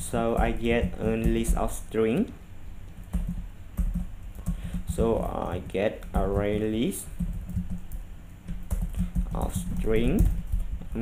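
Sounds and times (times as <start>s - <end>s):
typing on keyboard: 0.2s - 11.0s.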